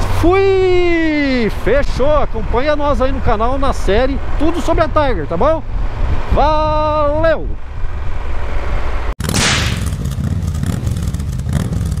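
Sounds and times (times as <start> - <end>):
wind and motorcycle engine rumble: 0.0 - 12.0.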